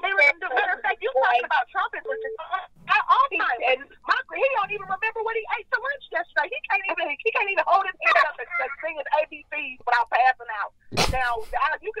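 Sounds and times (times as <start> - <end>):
person talking over telephone: 0.0 - 12.0.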